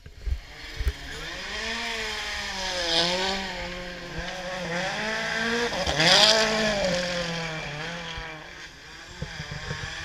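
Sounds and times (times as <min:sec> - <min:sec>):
rally car engine revving: 0:00.2 - 0:10.0.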